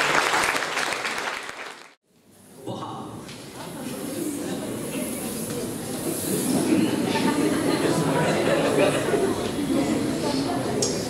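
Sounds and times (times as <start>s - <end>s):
crowd noise in a hall: 0.0s - 11.0s
indistinct voices: 2.6s - 11.0s.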